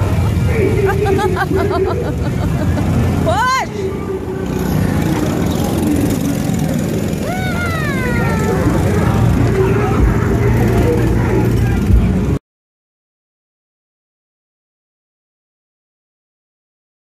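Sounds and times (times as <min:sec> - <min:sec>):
go-kart engines droning: 0:00.0 - 0:12.4.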